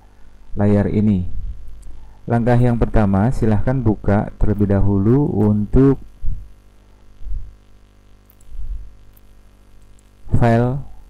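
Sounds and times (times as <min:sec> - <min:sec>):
electrical mains hum: 0:00.0 - 0:11.0
soft low thuds: 0:06.1 - 0:06.6, 0:07.2 - 0:07.6, 0:08.5 - 0:09.0.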